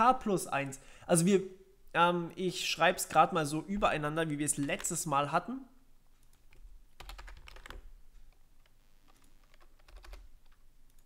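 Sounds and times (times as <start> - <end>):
faint keyboard typing: 4.5 - 5.0, 6.1 - 11.0.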